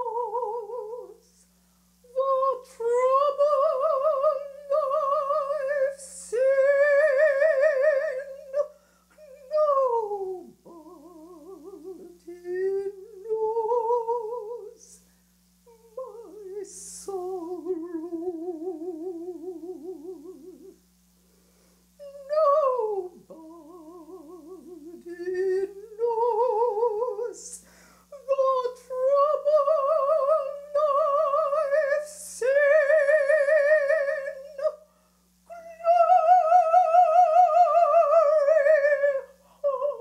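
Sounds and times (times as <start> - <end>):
woman humming and singing: 0.0 - 20.8, 22.0 - 27.6.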